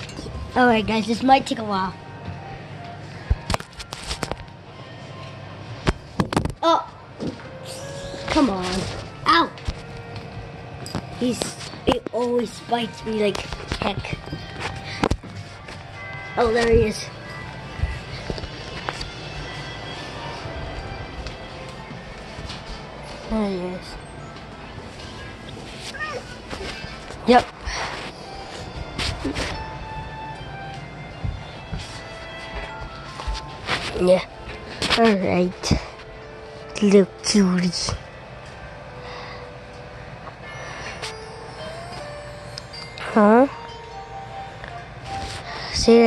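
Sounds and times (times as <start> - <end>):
background music: 0.0 - 46.0.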